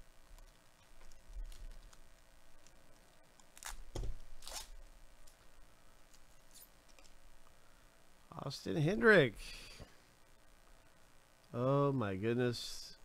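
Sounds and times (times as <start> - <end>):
faint crinkling: 0.0 - 8.0
wrapper ripping: 3.4 - 4.8.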